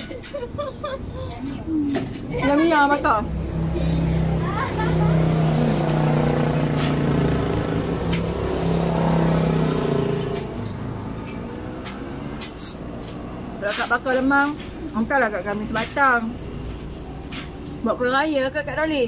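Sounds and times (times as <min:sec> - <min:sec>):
vehicle engine running: 0:01.2 - 0:14.3.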